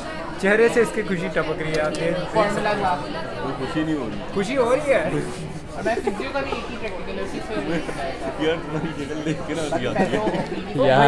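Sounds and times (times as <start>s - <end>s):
chatter of many students: 0.0s - 11.0s.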